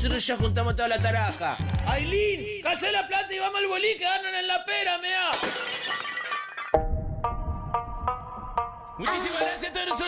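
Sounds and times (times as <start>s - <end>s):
glass shattering sound effect: 5.3s - 6.8s.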